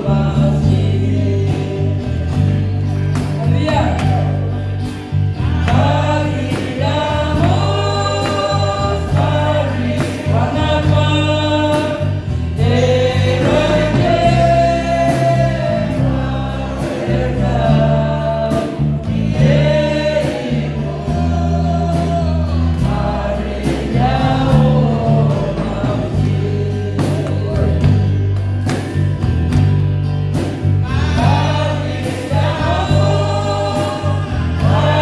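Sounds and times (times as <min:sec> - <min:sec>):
group singing gospel song: 0:00.0 - 0:35.0
instrumental accompaniment with beat: 0:00.0 - 0:35.0.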